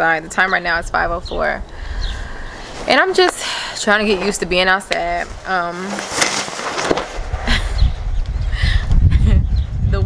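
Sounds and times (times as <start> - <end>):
wind buffeting microphone: 0.0 - 6.1, 6.9 - 10.0.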